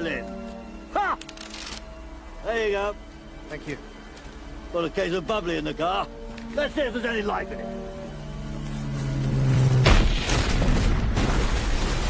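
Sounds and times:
loud explosion: 0:09.8 - 0:12.0
rumble of blast and debris: 0:09.8 - 0:12.0.

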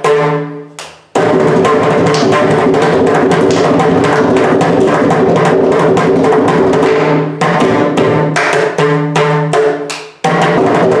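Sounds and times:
hand drum fast strokes: 0:01.1 - 0:11.0.

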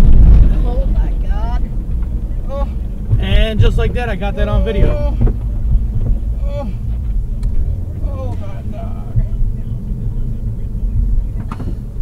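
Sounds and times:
car interior road rumble: 0:00.0 - 0:12.0.

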